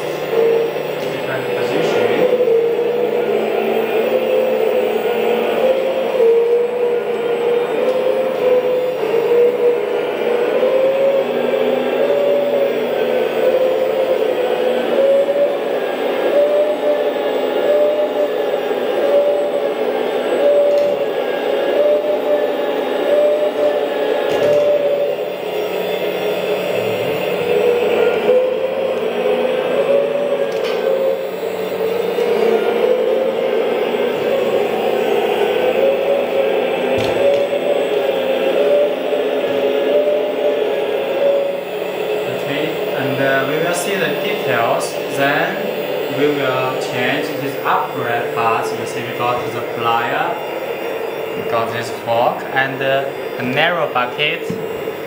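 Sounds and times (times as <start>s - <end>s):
hydraulic pump whining: 0.0s - 55.0s.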